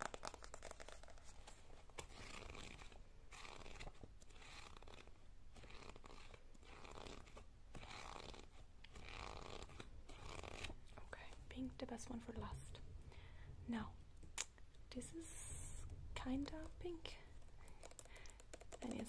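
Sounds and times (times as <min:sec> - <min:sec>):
nails scratching a book: 0:00.0 - 0:11.4, 0:17.6 - 0:19.0.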